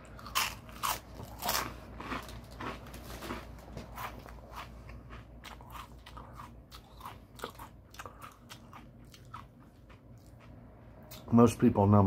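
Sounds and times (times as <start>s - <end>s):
person chewing crunchy snack: 0.0s - 11.2s.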